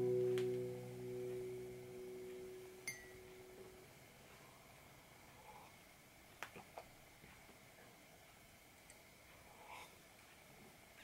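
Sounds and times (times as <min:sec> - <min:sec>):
acoustic guitar chord ringing: 0:00.0 - 0:03.7.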